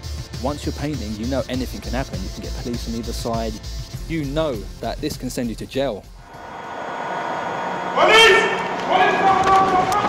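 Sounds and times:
rushing noise: 0:06.2 - 0:09.3.

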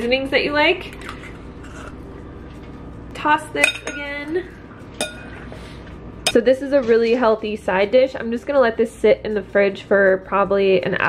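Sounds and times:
utensil clinking against bowl: 0:03.6 - 0:04.2, 0:05.0 - 0:05.4.

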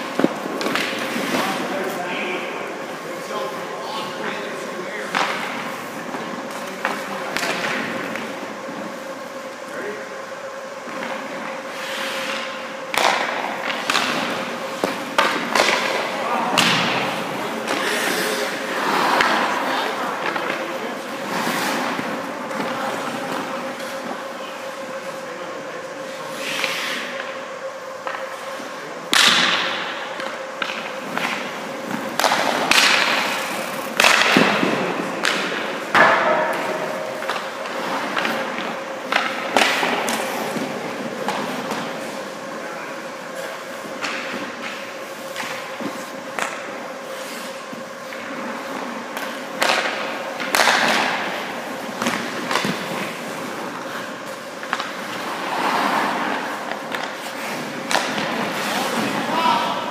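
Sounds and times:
pucks and sticks knocking: 0:00.0 - 0:01.7, 0:10.8 - 0:19.6, 0:29.1 - 0:42.4, 0:43.4 - 0:59.9
skate blades scraping ice: 0:00.0 - 0:02.2, 0:10.8 - 0:25.4, 0:26.0 - 0:27.4, 0:29.4 - 0:59.9
steady hum: 0:00.0 - 0:59.9.

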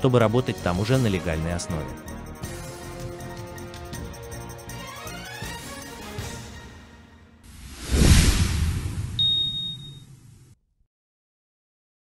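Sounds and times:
low rumble: 0:07.5 - 0:10.5
bright high ding: 0:09.2 - 0:10.0.

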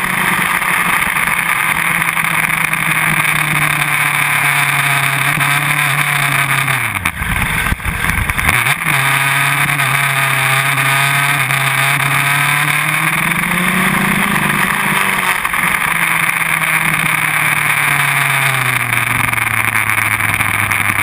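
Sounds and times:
motorcycle engine at racing speed: 0:00.0 - 0:21.0
wind rushing over microphone: 0:07.0 - 0:08.7.

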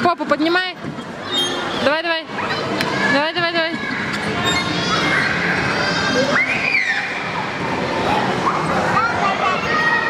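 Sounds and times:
hubbub of children's voices: 0:00.0 - 0:10.0.

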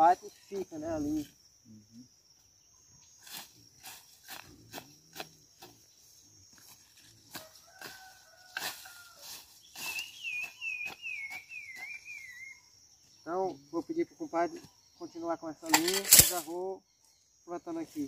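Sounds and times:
high insect drone: 0:00.0 - 0:18.0.

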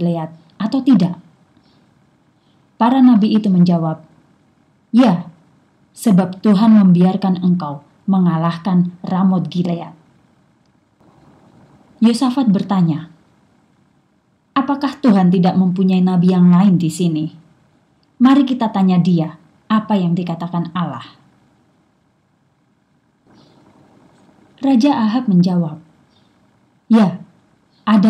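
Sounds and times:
faint recording hiss: 0:00.0 - 0:28.0.

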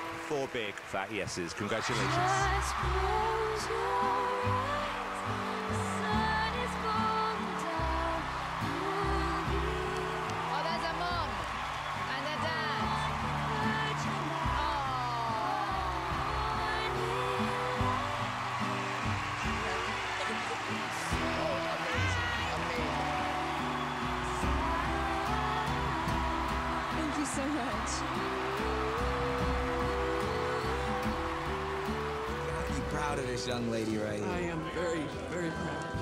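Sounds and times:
background music sustained notes: 0:00.0 - 0:36.0.

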